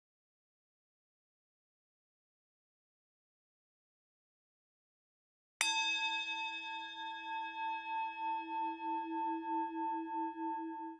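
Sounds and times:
bell-like chime with wavering pulse: 5.6 - 10.9.

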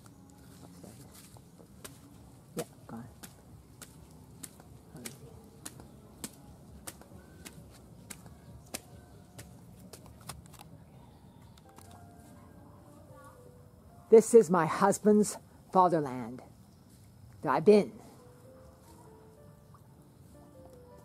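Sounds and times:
footsteps on stone steps: 1.0 - 10.6.

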